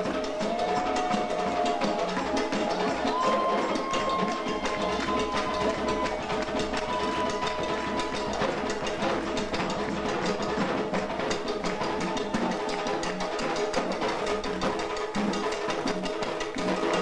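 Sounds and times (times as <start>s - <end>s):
hand drums: 0.0s - 17.0s
woodblock-like clicking strikes: 0.0s - 17.0s.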